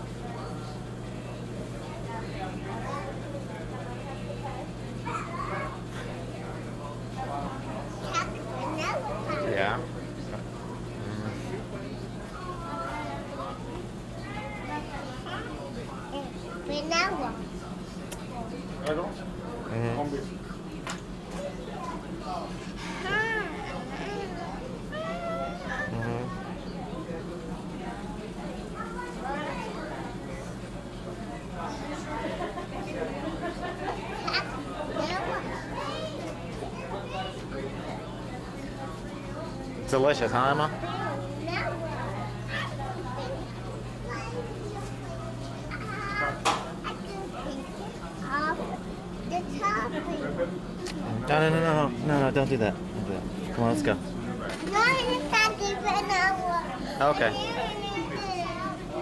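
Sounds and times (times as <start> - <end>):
indistinct voices chattering: 0.0 - 59.0
steady low hum: 0.0 - 59.0
toddler high-pitched vocal sounds: 23.0 - 26.0.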